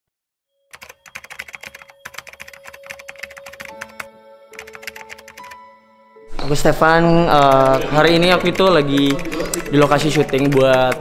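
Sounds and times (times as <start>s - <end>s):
keyboard typing clicks: 0.7s - 5.6s, 7.2s - 11.0s
soft sustained musical notes: 1.6s - 7.6s.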